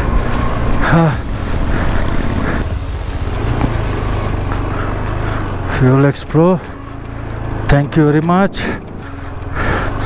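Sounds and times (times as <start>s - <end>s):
motorcycle engine under load: 0.0s - 10.0s.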